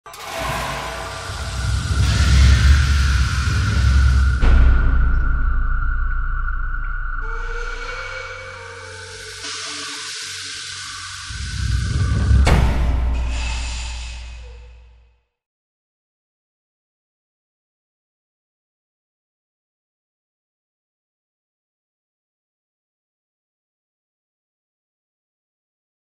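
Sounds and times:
held high tone: 0.1 - 12.6
cinematic intro music: 0.1 - 15.0
whooshing swells: 0.1 - 15.0
deep rumble: 0.3 - 9.9, 10.8 - 15.0.

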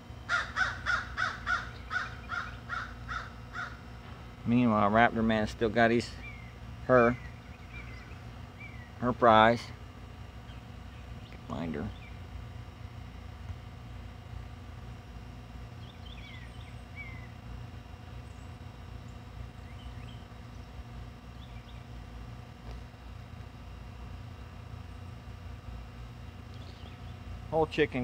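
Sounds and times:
steady low rumble: 0.0 - 28.0
birds chirping: 0.3 - 12.8, 15.6 - 22.5, 26.2 - 28.0.

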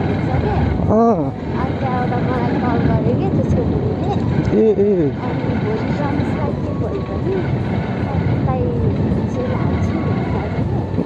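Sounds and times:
motorcycle engine: 0.0 - 11.0
wind noise: 0.0 - 11.0.

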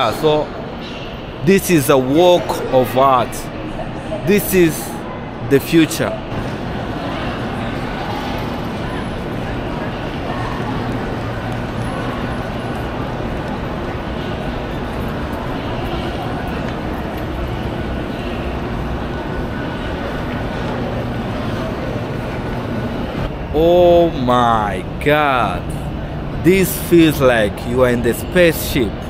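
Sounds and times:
crowd talking: 0.0 - 29.0
people walking: 6.4 - 23.3.

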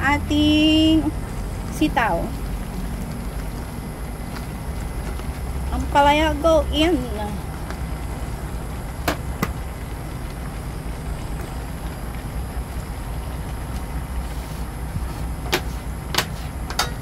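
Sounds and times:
stove rumbling under a wok: 0.0 - 17.0.

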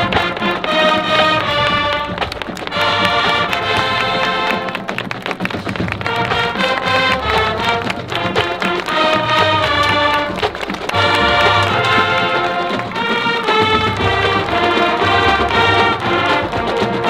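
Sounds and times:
brass holding chords: 0.0 - 5.0, 5.9 - 17.0
drum hits: 0.0 - 17.0.

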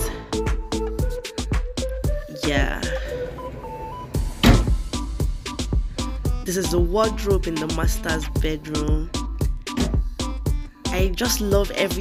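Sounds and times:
afrobeat music with a beat: 0.0 - 12.0.

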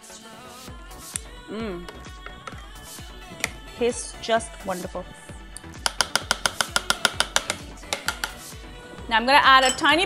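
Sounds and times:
soft background music: 0.0 - 10.0
fast sharp clicks: 5.8 - 8.4.

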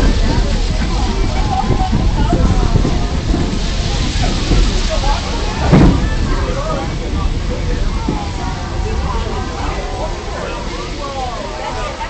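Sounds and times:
faint passengers' voices: 0.0 - 12.0
railroad coach rolling on track: 0.0 - 12.0.

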